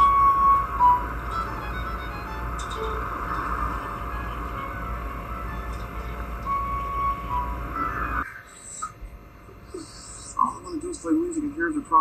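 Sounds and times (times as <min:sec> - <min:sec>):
film music: 0:00.0 - 0:08.3
low rumble of background noise: 0:00.0 - 0:12.0.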